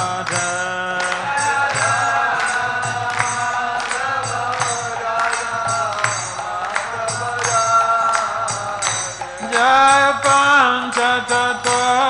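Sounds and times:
hand cymbal strikes: 0.0 - 12.0.

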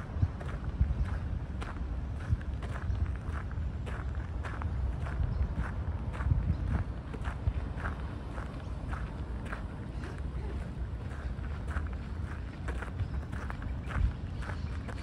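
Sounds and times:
steady low rumble: 0.0 - 15.0
footsteps on gravel: 0.4 - 15.0.

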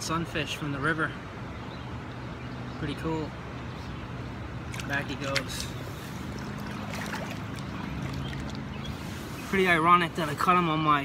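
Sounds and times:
boots splashing through shallow water: 4.6 - 8.9.

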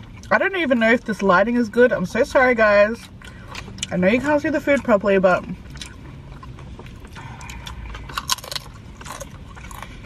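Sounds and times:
low steady hum: 0.0 - 10.0
crunching and chewing chips: 2.9 - 4.0, 4.7 - 10.0.

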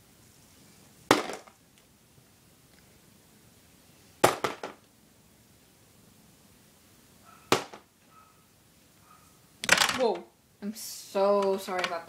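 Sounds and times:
small objects clicking on table: 9.6 - 10.2.

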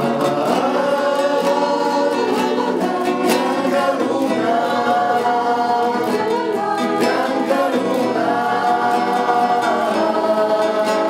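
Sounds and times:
acoustic guitars strumming: 0.0 - 11.0
voices singing together: 0.0 - 11.0.

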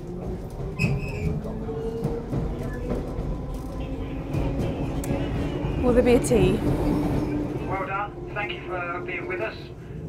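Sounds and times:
train wheels rumbling on track: 0.0 - 10.0.

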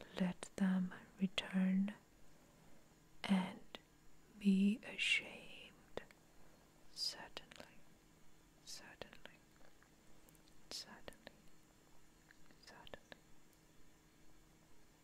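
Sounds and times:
person whispering: 0.0 - 2.0, 7.0 - 7.8, 8.6 - 9.4, 10.7 - 11.4, 12.6 - 13.2.

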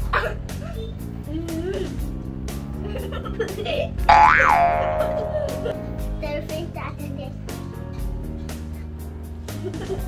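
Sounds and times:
background music: 0.2 - 10.0
cartoon boing sound effect: 4.1 - 6.0.

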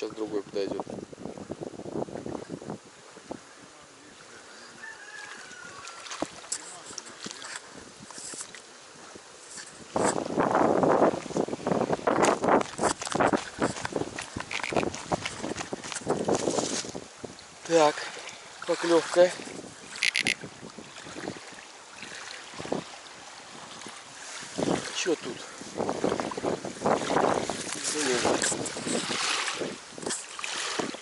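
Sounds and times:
wind on microphone: 0.0 - 18.2, 18.8 - 31.0
faint outdoor background: 0.0 - 20.6
reeds and grass rustling: 4.5 - 21.5, 22.2 - 31.0.

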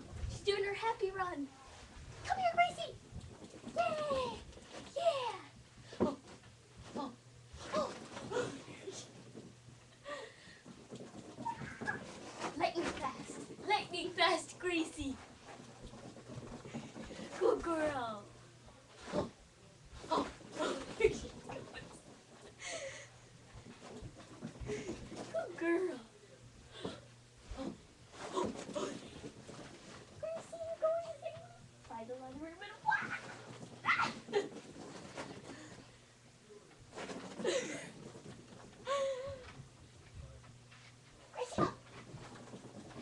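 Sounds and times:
faint room noise: 0.0 - 43.0.

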